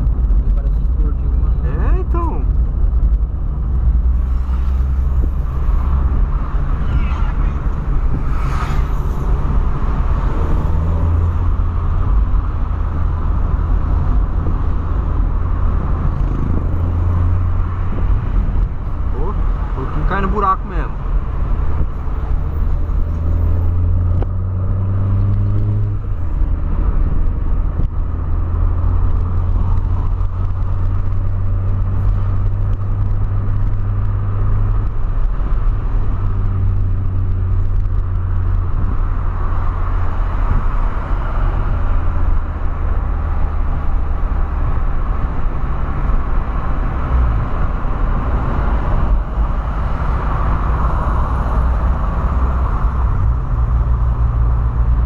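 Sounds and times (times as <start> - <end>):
car engine and road drone: 0.0 - 55.0.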